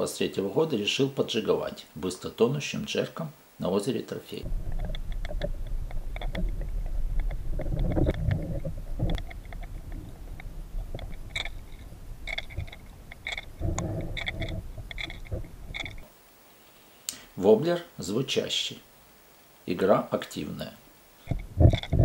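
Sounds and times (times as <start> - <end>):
low underwater rumble: 4.5 - 16.0
lure rattle clicking under water: 4.7 - 16.0.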